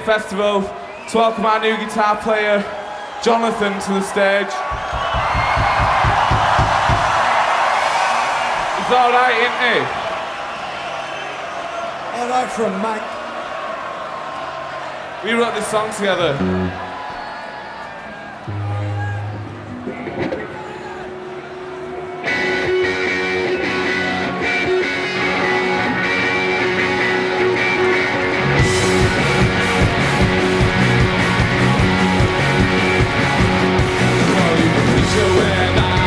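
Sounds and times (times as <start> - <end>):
drums and bass: 4.7 - 7.4, 28.4 - 36.0
electric guitar chords: 16.4 - 16.9, 18.4 - 36.0.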